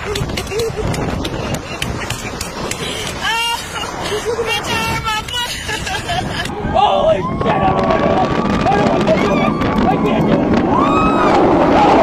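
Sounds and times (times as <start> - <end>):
people screaming and laughing: 0.0 - 12.0
wind rushing on microphone: 0.0 - 12.0.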